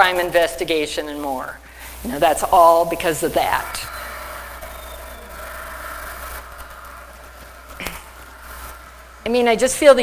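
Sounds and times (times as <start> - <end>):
faint steady hiss: 0.0 - 10.0
low electrical hum: 0.0 - 10.0.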